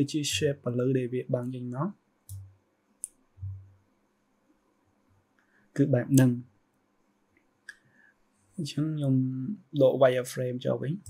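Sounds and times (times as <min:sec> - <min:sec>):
soft low thumps: 0:03.4 - 0:03.7.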